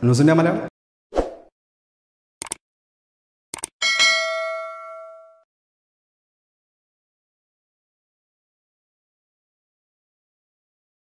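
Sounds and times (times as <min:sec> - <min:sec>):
notification bell ding: 0:03.8 - 0:05.5.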